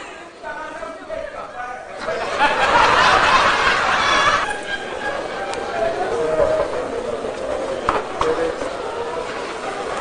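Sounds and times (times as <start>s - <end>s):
indistinct talking: 0.0s - 10.0s.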